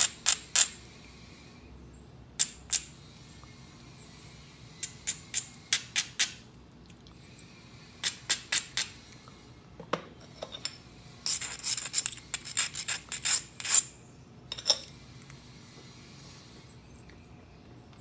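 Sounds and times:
stone rasping along stone edge: 0:11.3 - 0:14.0.

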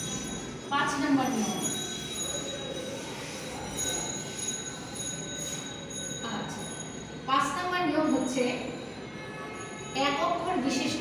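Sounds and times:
faint high whining tones: 0:00.0 - 0:11.0.

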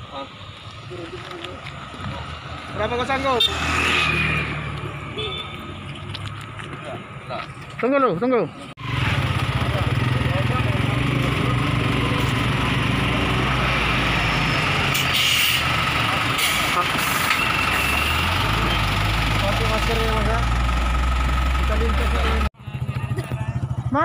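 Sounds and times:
diesel truck engine idling: 0:15.6 - 0:24.0.

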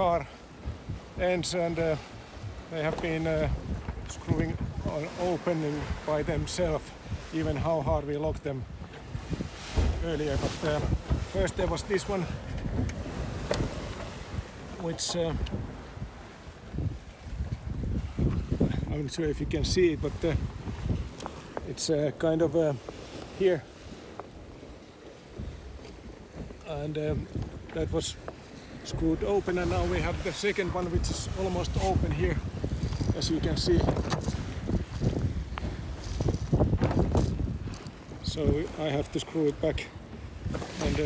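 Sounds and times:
wind noise on microphone: 0:00.0 - 0:41.0.

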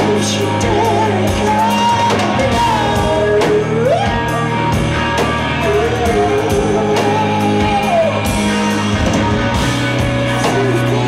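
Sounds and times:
person singing: 0:00.0 - 0:08.4, 0:10.0 - 0:11.0
drum kit: 0:00.0 - 0:11.0
electric bass: 0:00.0 - 0:11.0
electric guitar: 0:00.0 - 0:11.0.

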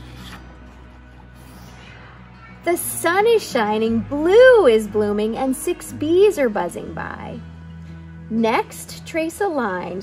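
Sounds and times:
page being turned: 0:00.0 - 0:00.8
soft background music: 0:00.0 - 0:10.0.

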